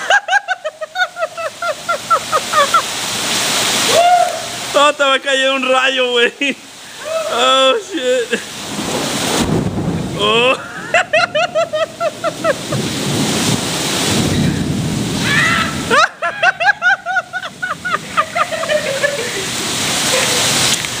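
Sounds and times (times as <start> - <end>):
high-pitched laughter: 0.0 - 2.9, 10.3 - 12.8, 15.3 - 20.6
heavy rain hiss: 0.0 - 21.0.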